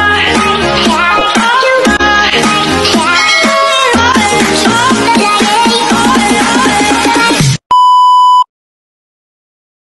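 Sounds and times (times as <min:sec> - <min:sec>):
background music: 0:00.0 - 0:07.4
loud electronic beep: 0:03.0 - 0:04.2.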